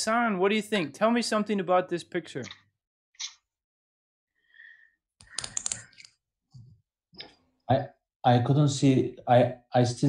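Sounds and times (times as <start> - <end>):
person speaking: 0.0 - 2.6, 5.3 - 6.0.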